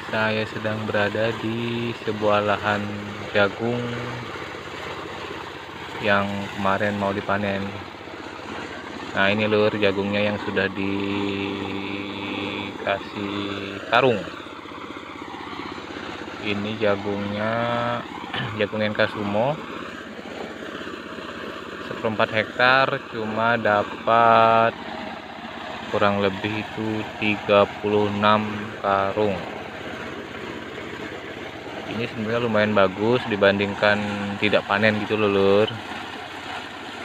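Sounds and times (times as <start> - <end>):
engine idling: 0.0 - 37.0.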